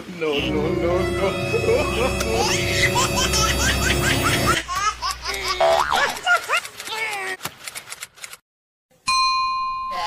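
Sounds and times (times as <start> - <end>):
background music: 0.3 - 4.6
high-pitched laughter: 2.4 - 7.4.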